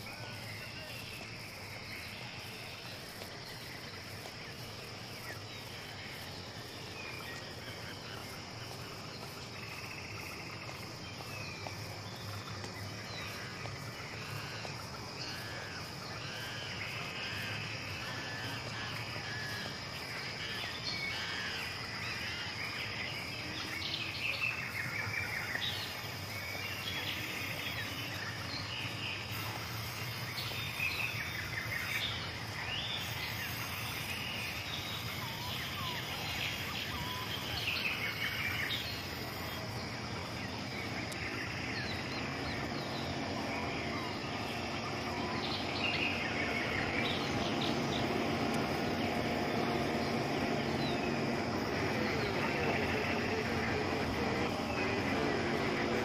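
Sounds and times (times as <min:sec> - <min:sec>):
high insect drone: 0:00.0 - 0:56.0
low steady hum: 0:38.8 - 0:56.0
birds chirping and calling: 0:40.7 - 0:56.0.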